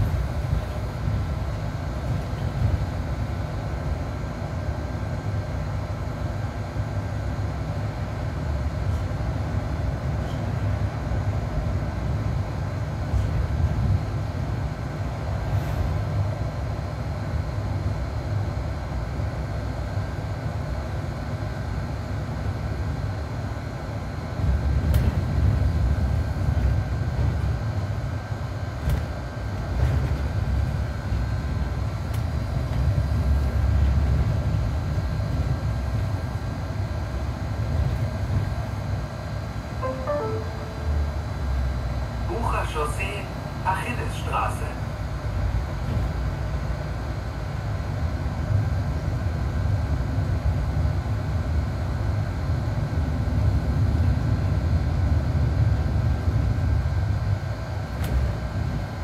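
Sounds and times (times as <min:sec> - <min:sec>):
bus engine rumble: 0:00.0 - 0:21.8, 0:23.2 - 0:55.0.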